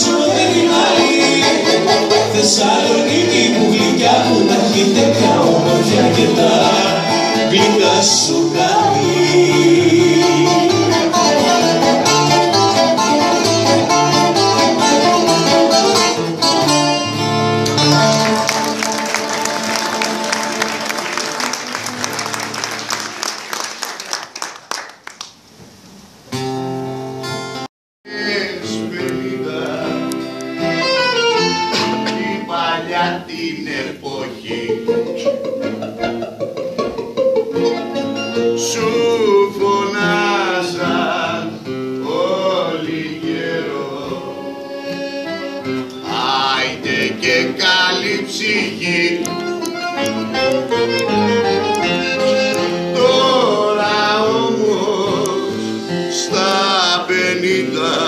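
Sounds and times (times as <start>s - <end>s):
person singing: 0.0s - 12.5s, 28.1s - 35.5s, 52.5s - 58.0s
accordion bouzouki and guitar music: 0.0s - 23.2s, 26.7s - 33.3s, 34.4s - 58.0s.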